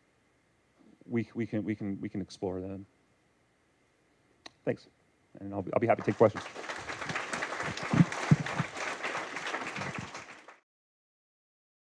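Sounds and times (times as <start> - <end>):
audience applauding: 5.8 - 10.6
microphone handling thumps: 7.8 - 8.7.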